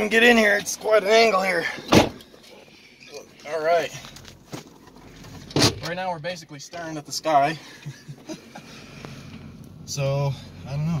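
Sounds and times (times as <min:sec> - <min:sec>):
diesel engine running low: 0:06.4 - 0:11.0.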